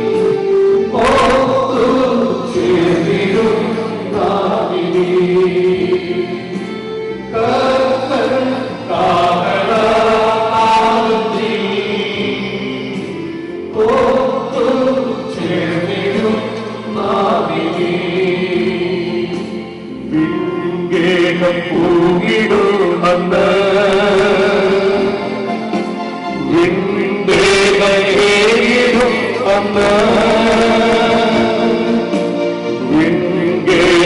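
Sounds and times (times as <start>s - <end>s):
group singing a hymn: 0.0s - 34.0s.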